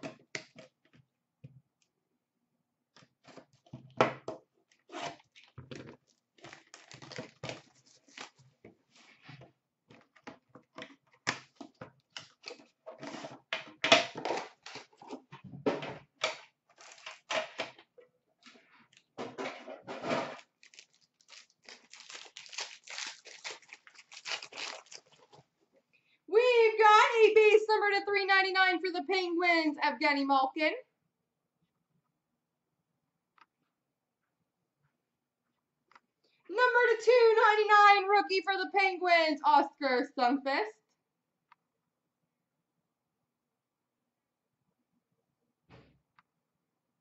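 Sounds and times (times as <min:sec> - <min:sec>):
plastic wrap crinkling and tearing: 0:05.2 - 0:08.6, 0:16.7 - 0:17.3, 0:20.3 - 0:25.4.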